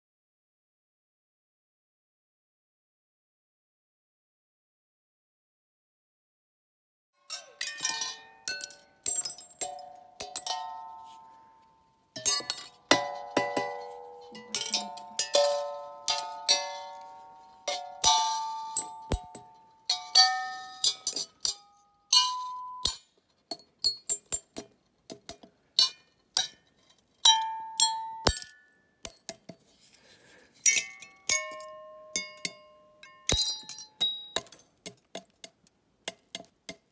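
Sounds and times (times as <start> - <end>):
glass clinking and ringing: 7.3 - 29.6, 30.6 - 35.5.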